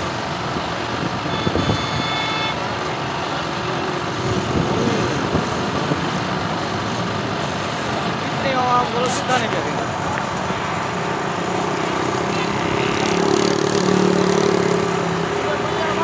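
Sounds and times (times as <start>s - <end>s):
large outdoor crowd: 0.0s - 16.0s
vehicle engines: 0.0s - 16.0s.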